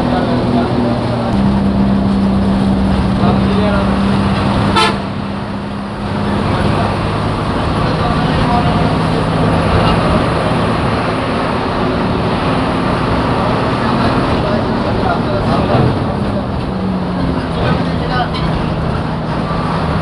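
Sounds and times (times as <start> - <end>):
bus engine and road noise: 0.0 - 20.0
long horn note: 4.3 - 5.2.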